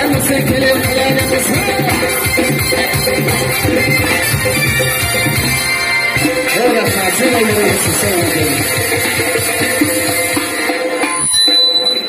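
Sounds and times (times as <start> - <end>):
quick drum beat: 0.0 - 5.6
electric keyboard dance music: 0.0 - 12.0.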